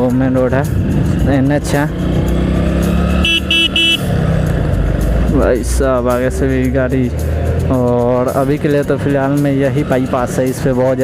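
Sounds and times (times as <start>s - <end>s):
motorcycle engine running: 0.6s - 5.5s
motorcycle horn beeps: 3.2s - 4.1s.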